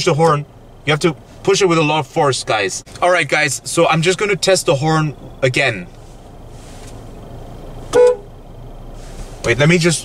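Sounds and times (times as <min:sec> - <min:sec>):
car horn toot: 0:07.9 - 0:08.4.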